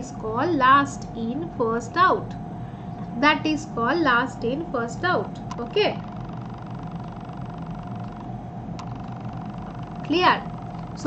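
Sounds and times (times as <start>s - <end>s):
low background hum: 0.0s - 11.0s.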